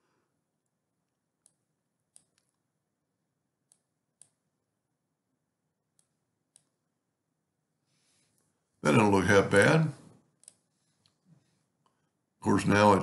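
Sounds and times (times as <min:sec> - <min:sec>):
computer mouse clicks: 0:01.4 - 0:02.6, 0:03.6 - 0:04.4, 0:05.9 - 0:06.8, 0:10.4 - 0:11.2.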